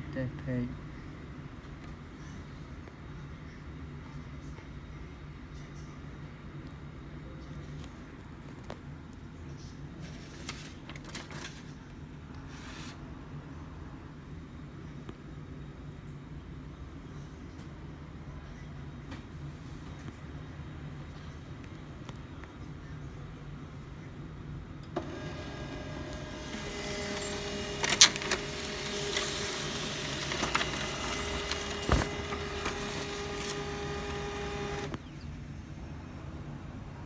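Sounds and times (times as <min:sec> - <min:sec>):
printer clicks: 0:24.9 - 0:35.0
laser printer motor whining: 0:25.0 - 0:35.0.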